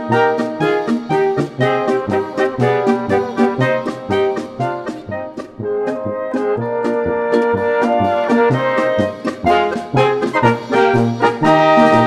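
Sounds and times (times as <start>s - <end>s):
brass polka music: 0.0s - 12.0s.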